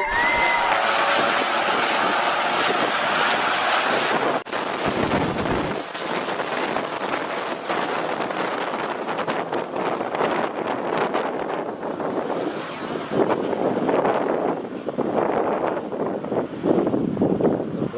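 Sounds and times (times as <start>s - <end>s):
wind buffeting microphone: 0.0s - 17.9s
turboprop airplane engines: 0.9s - 17.9s.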